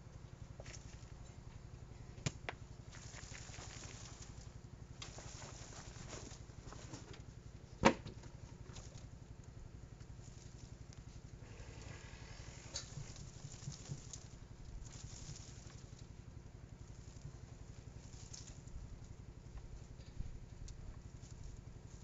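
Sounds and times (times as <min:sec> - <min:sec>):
soil pattering onto wire mesh: 0:02.2 - 0:07.2, 0:11.8 - 0:19.3
foliage rustling: 0:02.8 - 0:07.1, 0:10.2 - 0:19.3.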